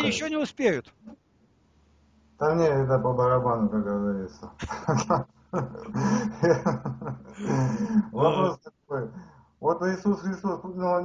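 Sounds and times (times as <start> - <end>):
men laughing: 4.6 - 8.6.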